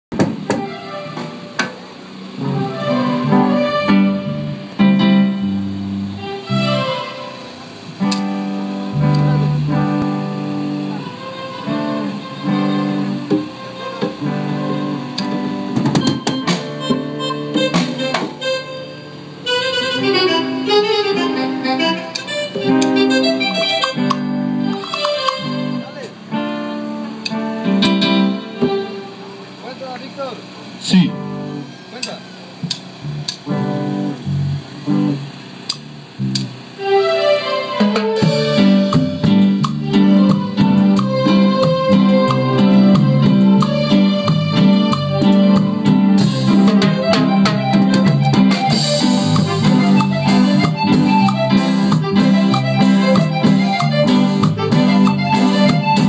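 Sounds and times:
sharp drum hits: 0:00.1 - 0:01.8, 0:15.3 - 0:18.4
electric guitar: 0:00.1 - 0:56.0
held keyboard chords: 0:00.1 - 0:56.0
congas: 0:09.0 - 0:26.3, 0:36.6 - 0:56.0.

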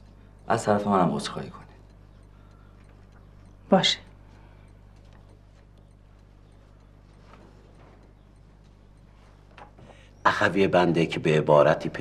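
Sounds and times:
faint soft ticks: 0:00.0 - 0:12.0.

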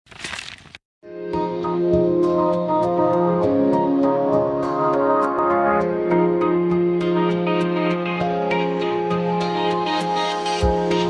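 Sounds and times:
soft keyboard music: 0:01.0 - 0:11.0.

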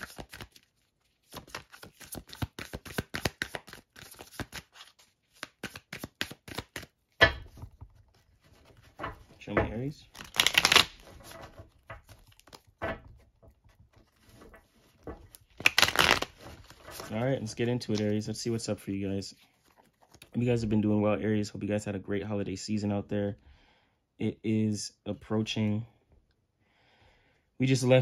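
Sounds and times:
cards shuffled by hand: 0:00.0 - 0:09.0, 0:10.1 - 0:12.7, 0:13.9 - 0:18.2.

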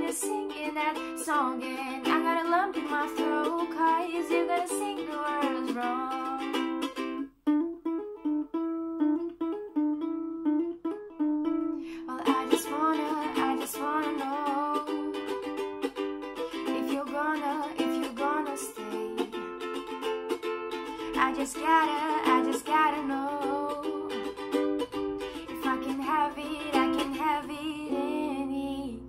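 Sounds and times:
woman singing: 0:00.0 - 0:06.8, 0:11.9 - 0:15.4, 0:16.5 - 0:19.5, 0:21.0 - 0:24.4, 0:25.4 - 0:29.0
ukulele strumming chords: 0:00.0 - 0:29.0.

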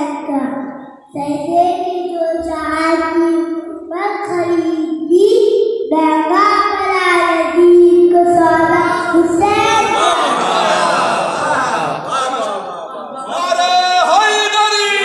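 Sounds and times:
boy singing into a microphone: 0:00.0 - 0:10.0.

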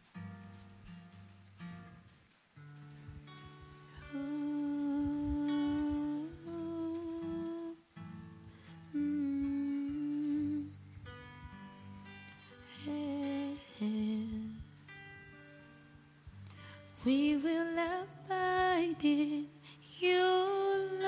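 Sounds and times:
acoustic guitar: 0:00.0 - 0:21.0
woman humming: 0:04.0 - 0:07.9, 0:08.9 - 0:10.9.

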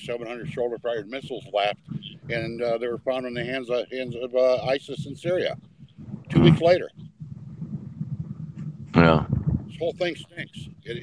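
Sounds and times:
low background rumble: 0:00.0 - 0:11.0
man saying a word: 0:09.0 - 0:09.3.

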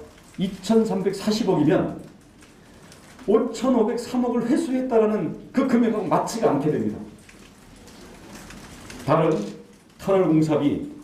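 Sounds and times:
low room noise: 0:00.0 - 0:11.0
camera shutters clicking rapidly: 0:08.4 - 0:09.8.

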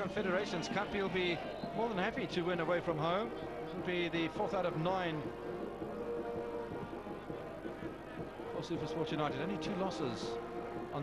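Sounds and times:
stadium crowd droning: 0:00.0 - 0:11.0.

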